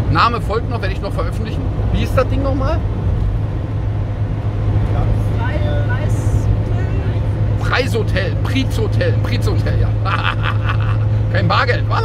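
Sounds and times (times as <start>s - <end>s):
engine rumble: 0.0s - 12.0s
road noise: 0.0s - 12.0s.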